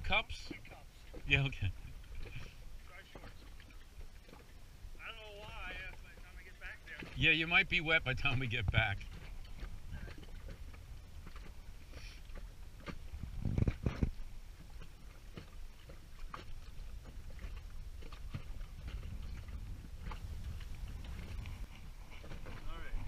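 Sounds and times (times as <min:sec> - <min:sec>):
rumble of water and wind: 0:00.0 - 0:23.0.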